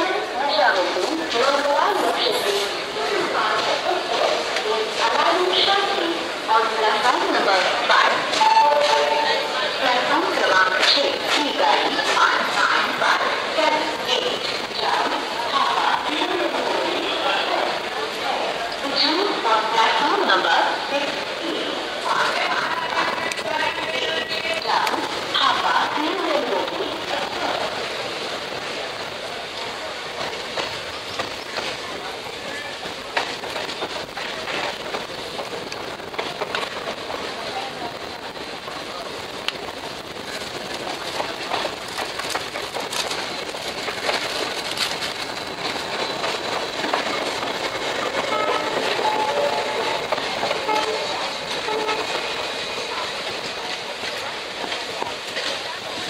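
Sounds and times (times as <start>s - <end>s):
train wheels rumbling on rail: 0.0s - 56.0s
wheels clicking over rail joints: 22.0s - 56.0s.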